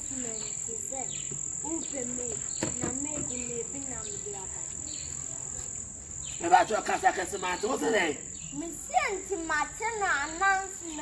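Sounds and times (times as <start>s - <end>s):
high-pitched insect drone: 0.0s - 8.5s
quiet talking: 0.0s - 11.0s.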